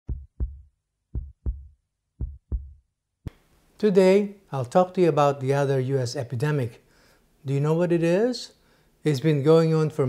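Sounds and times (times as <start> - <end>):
heartbeat thumps: 0.0 - 2.8.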